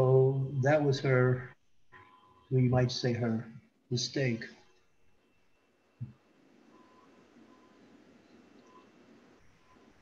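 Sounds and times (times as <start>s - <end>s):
low background noise: 0.0s - 10.0s
faint short beeps: 4.6s - 10.0s.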